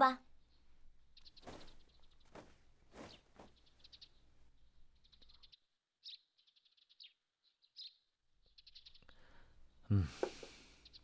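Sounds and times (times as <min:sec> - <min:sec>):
birds chirping trills: 0:00.0 - 0:11.0.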